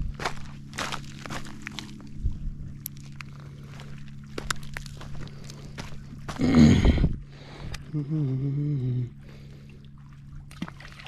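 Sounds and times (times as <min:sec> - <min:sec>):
footsteps crunching on rocks: 0:00.0 - 0:06.9.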